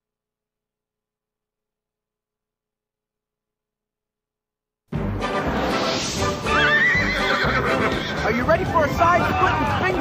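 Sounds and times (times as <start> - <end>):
music: 4.9 - 10.0
horse whinnying: 6.4 - 8.3
horse hoofbeats: 6.6 - 10.0.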